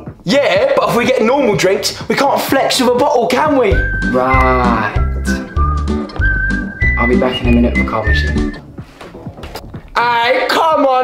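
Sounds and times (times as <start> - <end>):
high whistle-like melody: 3.7 - 8.6.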